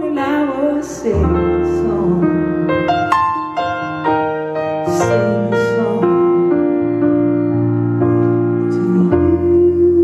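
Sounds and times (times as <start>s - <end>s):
slow piano accompaniment: 0.0s - 10.0s.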